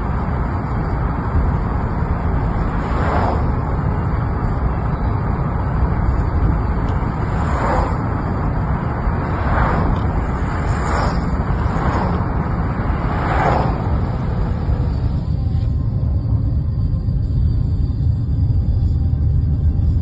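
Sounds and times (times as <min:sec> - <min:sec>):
road hiss: 0:00.0 - 0:15.2
car engine and tyre rumble: 0:00.0 - 0:20.0.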